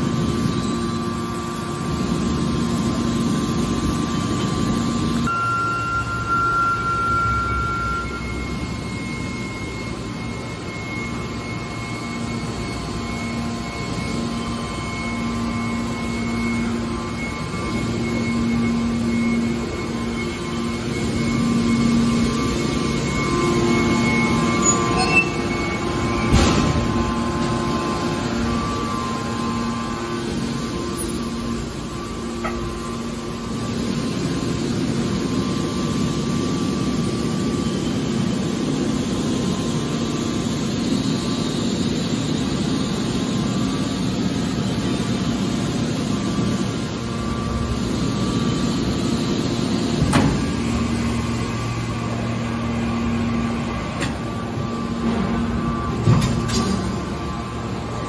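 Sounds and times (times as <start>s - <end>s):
hydraulic machine humming: 0.0s - 58.0s.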